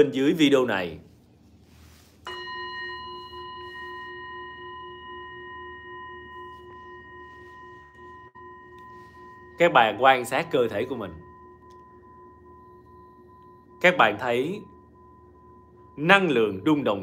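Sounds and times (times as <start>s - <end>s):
singing bowl ringing: 1.8s - 17.0s.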